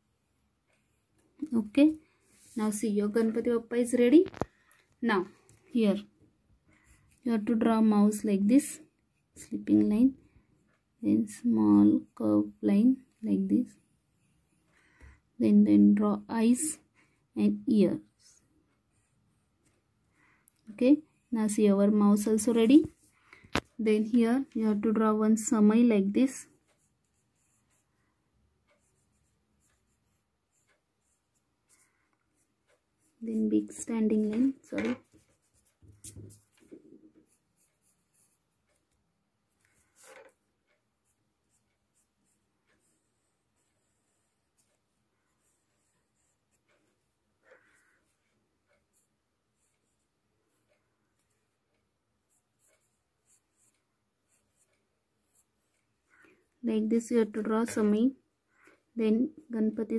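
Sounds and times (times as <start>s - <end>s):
pencil scratching on paper: 6.7s - 17.2s, 18.0s - 19.9s, 24.5s - 51.6s, 52.2s - 56.2s.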